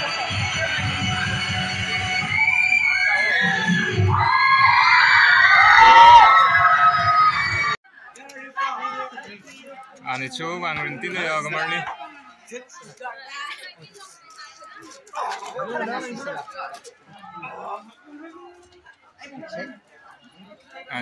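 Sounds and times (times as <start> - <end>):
audience screaming and cheering: 0.0 - 7.8
loud dance music: 0.0 - 7.8.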